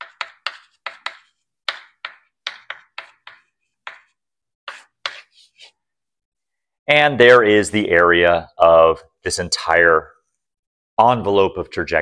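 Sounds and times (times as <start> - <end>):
chalk tapping and scratching on blackboard: 0.0 - 5.8.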